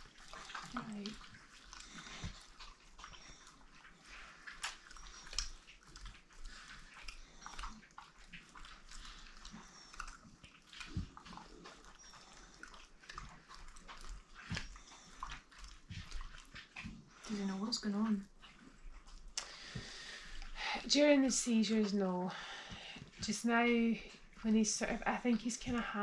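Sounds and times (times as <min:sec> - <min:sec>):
dog licking or chewing: 0:00.0 - 0:26.0.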